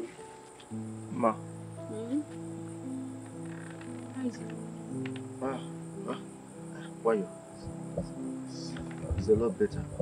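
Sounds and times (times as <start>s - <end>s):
crickets chirping: 0.0s - 10.0s
low sustained film music chords: 0.0s - 10.0s.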